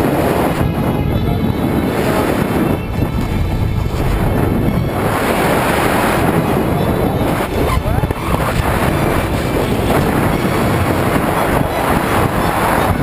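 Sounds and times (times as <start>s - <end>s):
freefall wind blasting over microphone: 0.0s - 13.0s.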